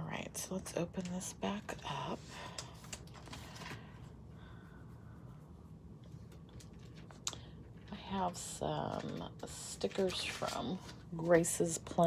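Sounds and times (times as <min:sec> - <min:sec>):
paper rustling: 0:02.8 - 0:04.0, 0:08.9 - 0:12.0.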